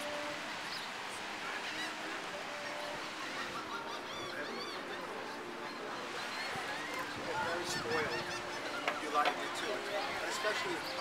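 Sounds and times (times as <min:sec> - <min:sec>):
gulls squawking: 0:00.0 - 0:11.0
steady background noise: 0:00.0 - 0:11.0.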